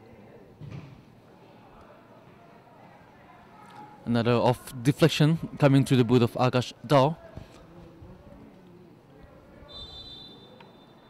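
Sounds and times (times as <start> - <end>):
stadium ambience: 0.0 - 11.0.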